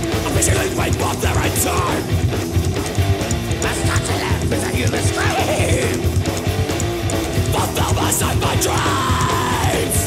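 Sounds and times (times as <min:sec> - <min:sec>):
punk rock song with yelled vocal: 0:00.0 - 0:10.0.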